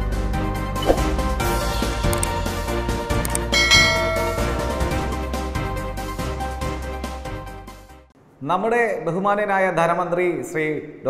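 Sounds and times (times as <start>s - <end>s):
background music: 0.0s - 8.1s
bell-like chime: 3.5s - 5.2s.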